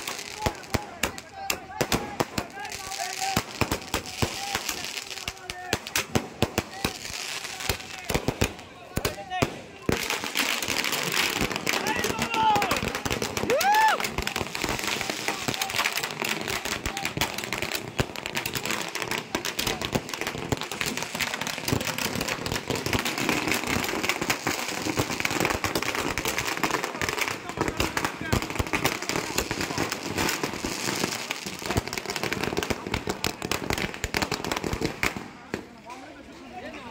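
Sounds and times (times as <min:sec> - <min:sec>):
firecrackers banging: 0:00.0 - 0:35.8.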